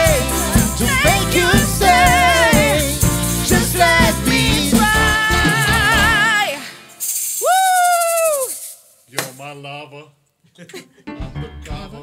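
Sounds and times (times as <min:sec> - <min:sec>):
hand shakers rattling: 0:00.0 - 0:05.6, 0:06.8 - 0:09.5
high voice singing ooh: 0:00.0 - 0:06.7.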